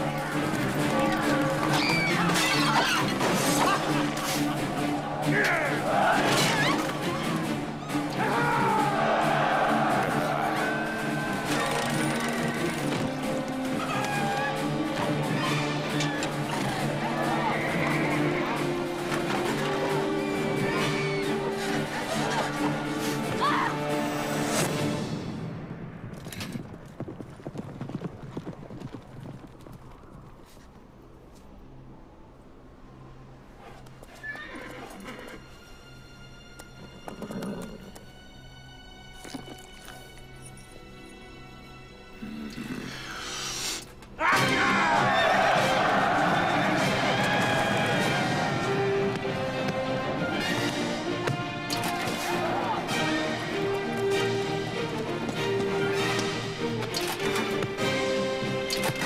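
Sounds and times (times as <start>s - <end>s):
hooves clattering: 0.0s - 23.0s, 26.0s - 31.5s, 45.0s - 59.0s
background soundtrack music: 0.0s - 26.5s, 31.6s - 59.0s
horse whinnying: 1.0s - 3.2s, 34.1s - 35.5s, 36.8s - 38.0s.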